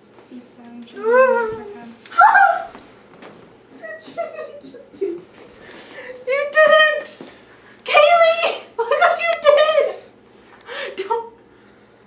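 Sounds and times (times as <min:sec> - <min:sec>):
young women laughing and squealing: 0:02.1 - 0:02.8, 0:03.8 - 0:05.3.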